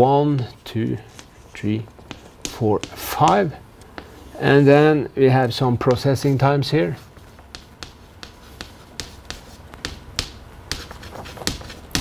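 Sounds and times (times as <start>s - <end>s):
chalk tapping on chalkboard: 2.0s - 4.2s, 7.4s - 12.0s.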